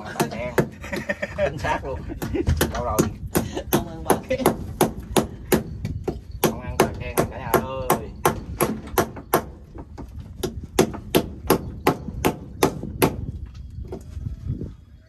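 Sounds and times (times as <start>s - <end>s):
tool knocking oyster shells on wood: 2.2s - 13.3s.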